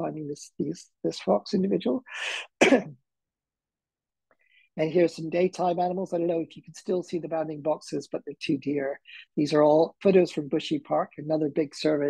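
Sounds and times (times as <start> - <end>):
man coughing or sneezing: 2.6 - 3.0.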